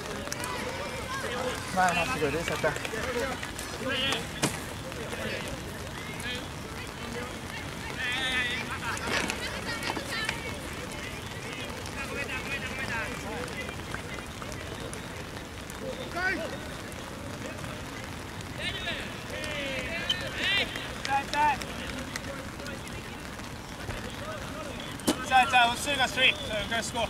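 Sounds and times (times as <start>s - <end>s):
players shouting calls: 0.0s - 27.0s.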